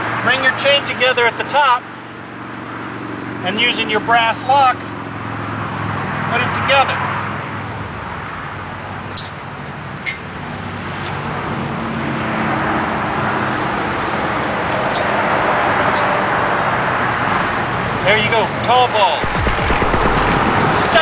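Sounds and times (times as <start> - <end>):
road traffic and engine noise: 0.0 - 21.0.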